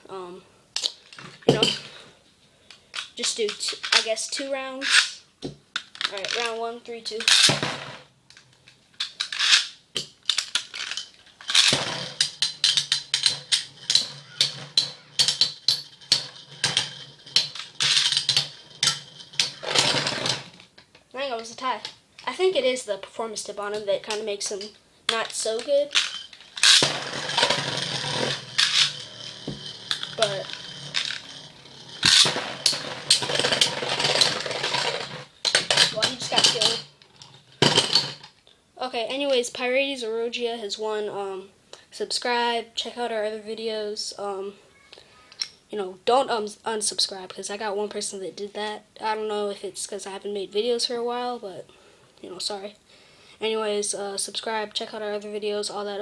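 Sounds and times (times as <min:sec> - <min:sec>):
metal tops clicking together: 0:08.3 - 0:21.1, 0:24.1 - 0:38.4
spinning tops humming: 0:11.7 - 0:20.7, 0:23.5 - 0:38.0.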